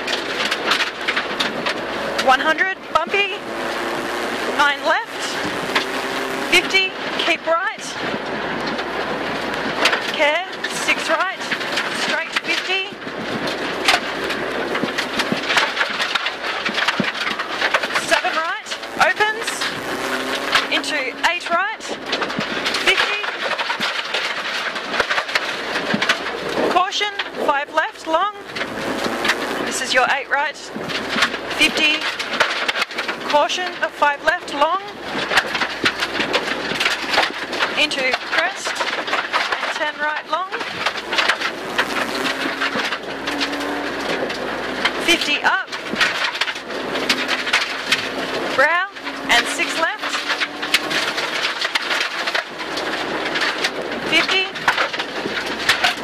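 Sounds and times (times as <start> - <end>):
gravel rattling on underbody: 0.0 - 56.0
rally car engine revving: 0.0 - 56.0.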